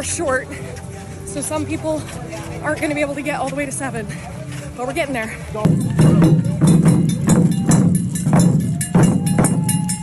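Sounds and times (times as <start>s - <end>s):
taiko drum strikes: 5.6s - 10.0s.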